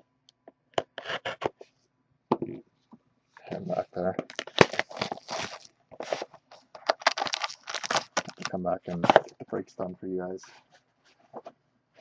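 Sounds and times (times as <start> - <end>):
cellophane crinkling and tearing: 3.5 - 9.3
cardboard flap opening: 4.3 - 9.3.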